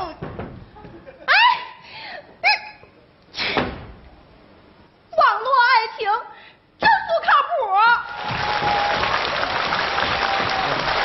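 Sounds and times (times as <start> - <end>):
audience applauding: 8.1 - 11.0.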